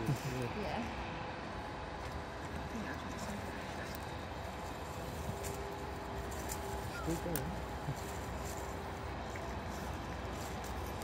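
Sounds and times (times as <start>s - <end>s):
outdoor background: 0.0s - 11.0s
animal chewing leaves: 1.9s - 11.0s
leafy branch rustling and crackling: 1.9s - 11.0s.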